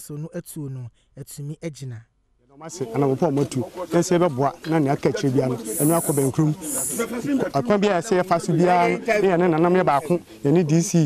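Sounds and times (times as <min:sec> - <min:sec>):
man speaking: 0:00.0 - 0:02.1, 0:02.7 - 0:11.0.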